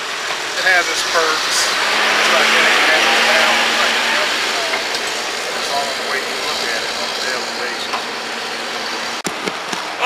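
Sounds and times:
low engine hum: 0.0s - 10.0s.

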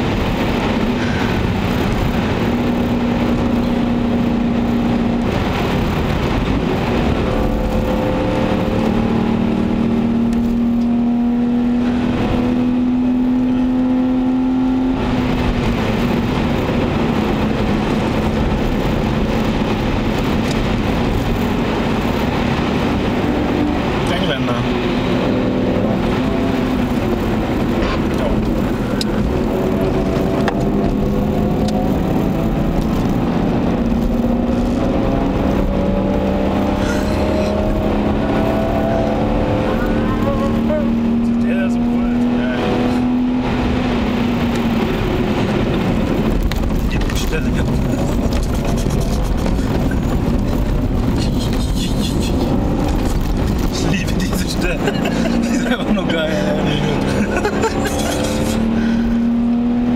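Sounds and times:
car engine pulling: 0.0s - 59.9s
road and tyre noise: 0.0s - 59.9s.

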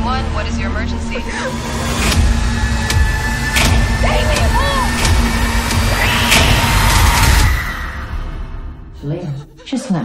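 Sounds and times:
sharp hits: 1.8s - 8.8s.

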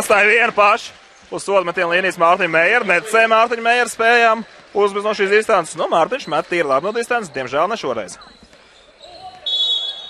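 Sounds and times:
low arena noise: 0.0s - 10.0s.

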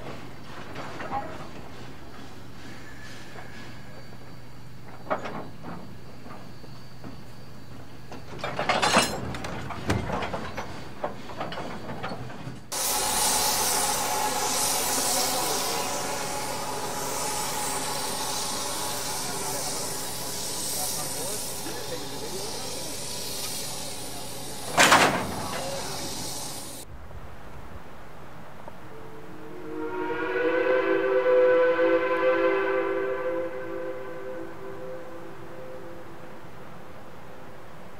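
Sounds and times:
compressed air hissing: 12.7s - 26.8s.

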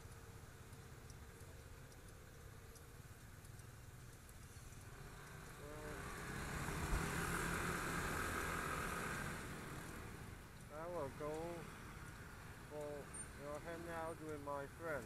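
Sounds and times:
motor scooters pulling away: 4.5s - 14.7s.

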